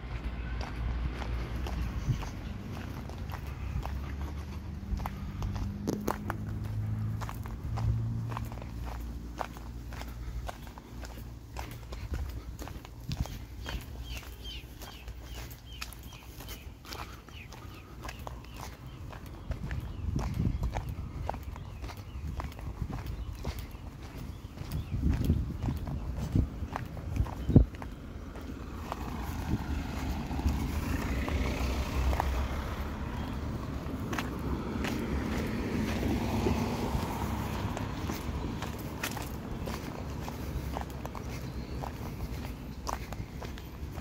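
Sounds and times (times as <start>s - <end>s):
footsteps on sidewalk: 0.0s - 44.0s
vehicle rumble: 0.0s - 44.0s.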